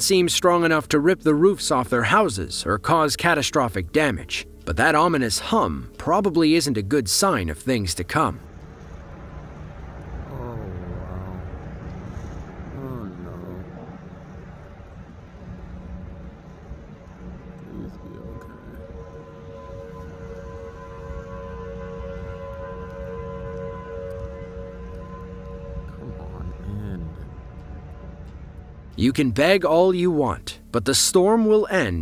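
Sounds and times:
warning siren steady tone: 8.2 - 29.6
wind rumble on microphone: 8.3 - 29.0.

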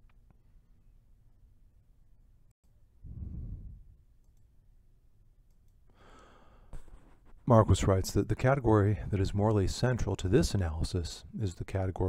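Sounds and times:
man breathing in: 3.1 - 3.9, 5.9 - 6.8.

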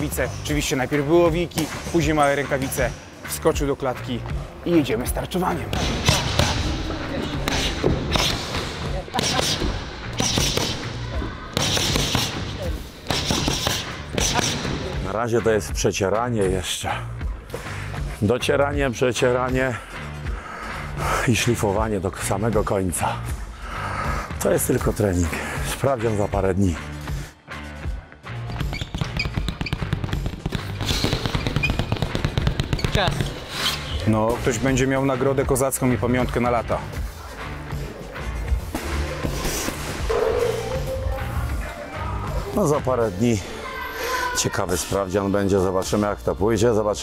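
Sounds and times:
background music: 0.0 - 47.0
punches hitting focus pads: 5.6 - 6.8, 7.4 - 14.9, 29.0 - 33.4.

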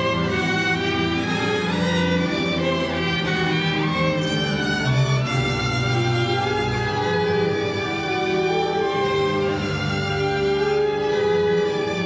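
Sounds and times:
orchestra with bowed strings: 0.0 - 12.0.

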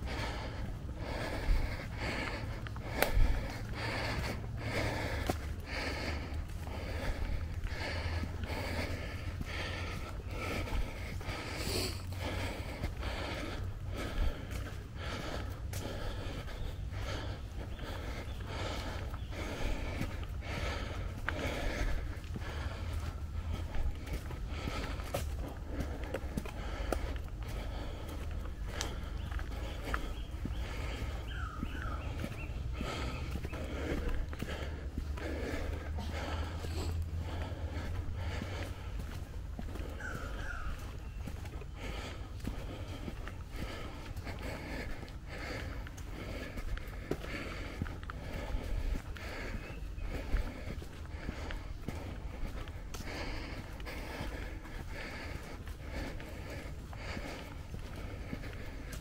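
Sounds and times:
footsteps on dirt trail: 0.0 - 59.0
person breathing: 0.0 - 59.0.

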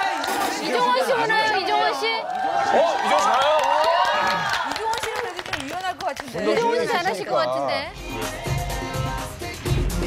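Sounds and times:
people talking over one another: 0.0 - 3.3, 4.3 - 8.0.

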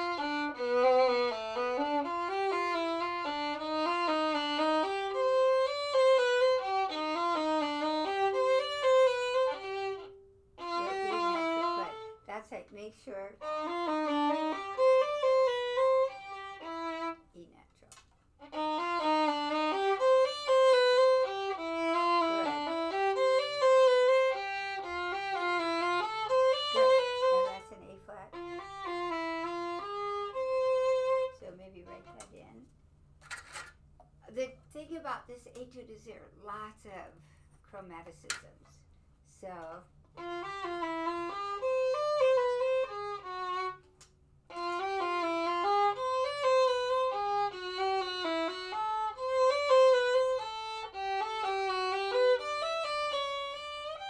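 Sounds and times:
two violins playing: 0.0 - 12.4, 13.4 - 17.2, 18.4 - 32.3, 40.2 - 43.9, 44.5 - 54.0.

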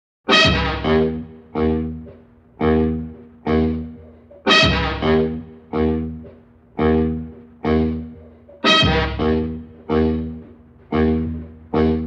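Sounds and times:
brass section accented chords: 0.3 - 12.0.

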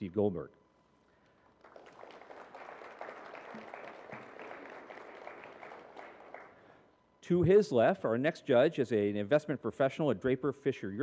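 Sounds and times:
audience applause: 1.6 - 6.6.

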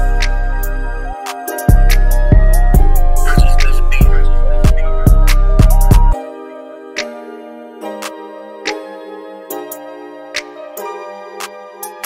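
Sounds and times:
bass and drums: 1.7 - 6.2.

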